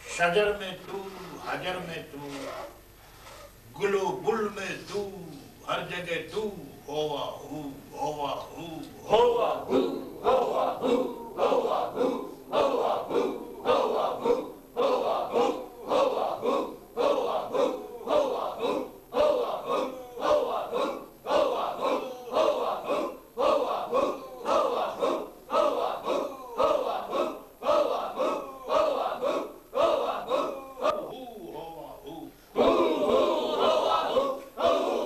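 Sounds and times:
men chanting in unison: 4.2 - 35.0.

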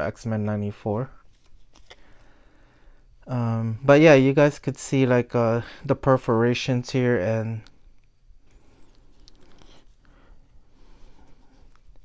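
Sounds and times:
trading cards being shuffled: 1.2 - 2.2.

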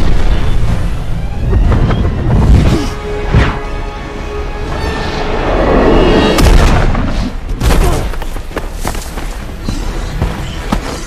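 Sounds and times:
film score music: 0.0 - 11.0.

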